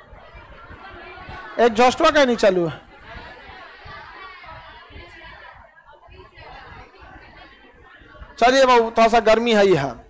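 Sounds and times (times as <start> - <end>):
faint chatter of people talking: 0.0 - 10.0.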